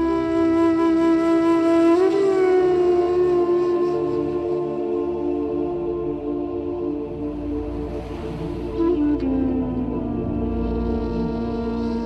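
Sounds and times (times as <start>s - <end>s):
held flute note: 0.0s - 12.0s
soft low drone: 0.0s - 12.0s.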